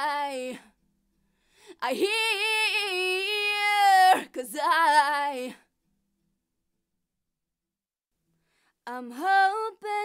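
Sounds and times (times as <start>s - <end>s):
woman singing: 0.0s - 0.8s, 1.7s - 5.7s, 8.8s - 10.0s.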